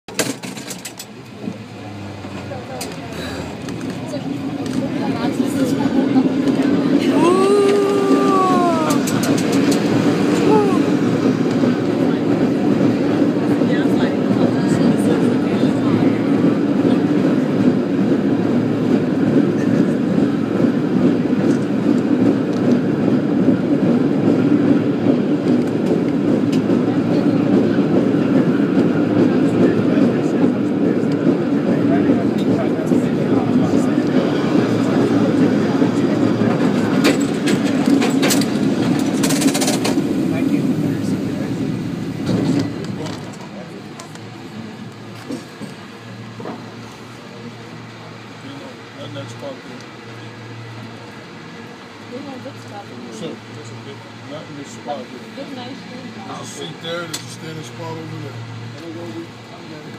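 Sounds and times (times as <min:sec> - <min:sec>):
cable car rumbling clatter: 0:00.1 - 0:59.9.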